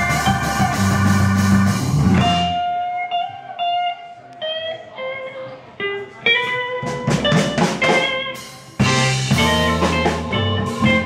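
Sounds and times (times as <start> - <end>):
drums crashing: 0.0 - 2.7, 6.8 - 11.0
electric guitar sustained notes: 0.0 - 11.0
live blues band: 0.0 - 11.0.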